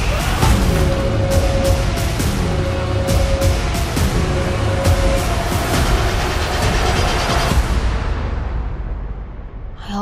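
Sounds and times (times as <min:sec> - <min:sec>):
dense rumble of effects and score: 0:00.0 - 0:10.0.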